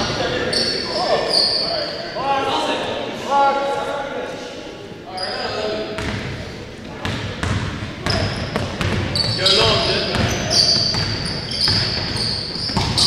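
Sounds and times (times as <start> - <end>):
sneaker squeaks: 0.0 - 2.2, 5.2 - 6.1, 7.4 - 13.0.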